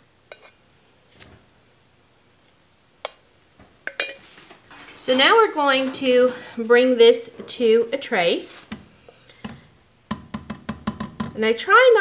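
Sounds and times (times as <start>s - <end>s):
metal clinking on ceramic: 3.9s - 5.4s.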